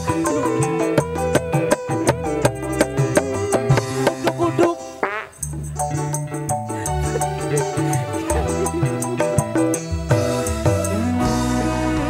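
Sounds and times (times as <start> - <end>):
fast hand-drum beats: 0.0 - 12.0
live band playing: 0.0 - 12.0.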